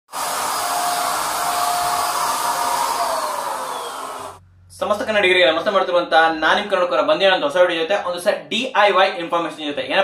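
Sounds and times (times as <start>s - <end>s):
paint sprayer motor blowing air: 0.1s - 4.4s.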